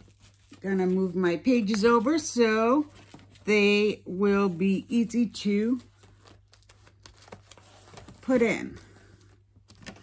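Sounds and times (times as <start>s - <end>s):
binder pages turning: 0.0s - 10.0s.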